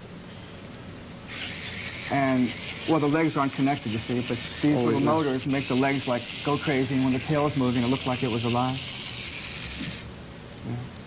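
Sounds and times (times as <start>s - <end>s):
small electric motors hissing: 1.2s - 10.1s.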